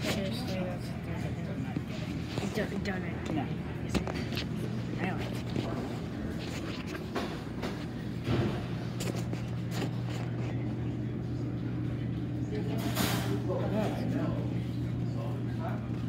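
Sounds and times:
faint voices: 0.0s - 16.0s
steady low hum: 0.0s - 16.0s.

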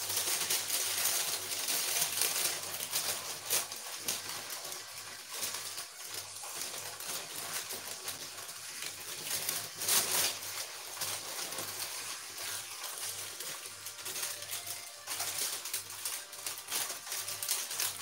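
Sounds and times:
baking paper rustling: 0.0s - 18.0s.

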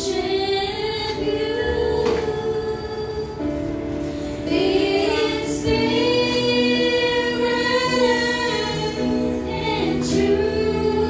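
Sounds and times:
choir singing worship song: 0.0s - 11.0s.

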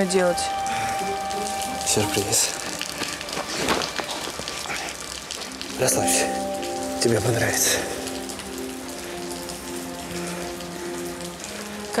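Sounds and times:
low held notes soundtrack: 0.0s - 12.0s
steady hiss: 0.0s - 12.0s.

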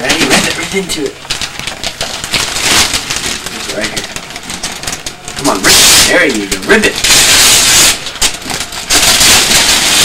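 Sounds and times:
wrapping paper rustling and crinkling: 0.0s - 10.0s.

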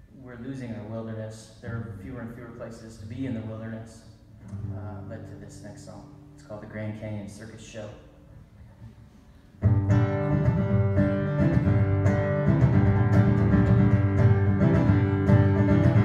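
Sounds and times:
acoustic guitar playing: 1.7s - 6.9s, 8.2s - 16.0s.

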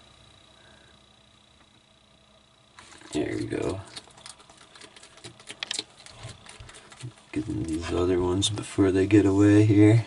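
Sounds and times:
lizard chewing with crunching clicks: 2.8s - 8.0s.

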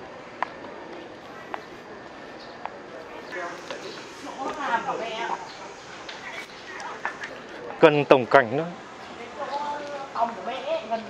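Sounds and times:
faint background voices: 0.0s - 11.0s
outdoor ambience: 0.0s - 11.0s.

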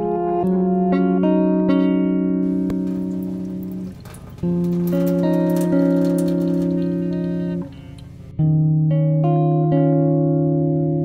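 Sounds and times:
plucked guitar notes: 0.0s - 11.0s.

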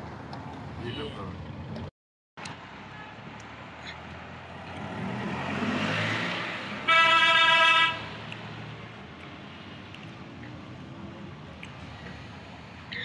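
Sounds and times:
road noise of moving car: 0.0s - 13.0s
vehicle horn blast: 6.8s - 8.1s.

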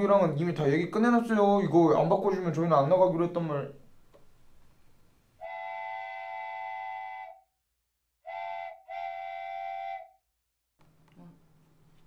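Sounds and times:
multi-pitch whistle blasts: 5.4s - 7.6s, 8.2s - 10.2s.

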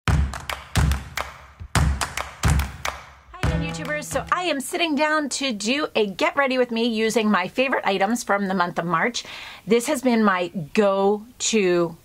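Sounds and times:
kick drum thumps: 0.1s - 4.5s
sharp percussive hits: 0.1s - 4.5s
held pitched note: 3.4s - 4.6s.

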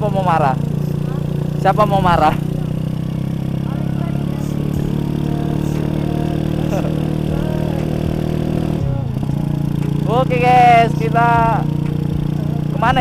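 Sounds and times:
motorcycle engine running steadily: 0.0s - 13.0s
wind and road noise: 0.0s - 13.0s.

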